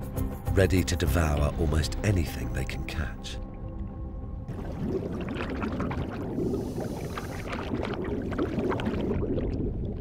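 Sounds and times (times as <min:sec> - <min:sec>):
air bubbling underwater: 0:04.5 - 0:10.0.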